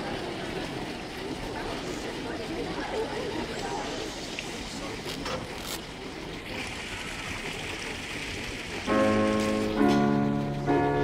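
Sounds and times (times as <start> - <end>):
room and audience noise: 0.0 - 11.0
keyboard playing sustained chords: 8.8 - 11.0.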